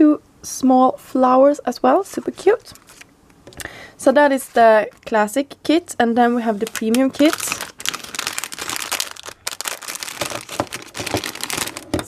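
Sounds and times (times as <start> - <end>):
plastic bag crinkling: 4.4 - 5.2, 6.2 - 12.0.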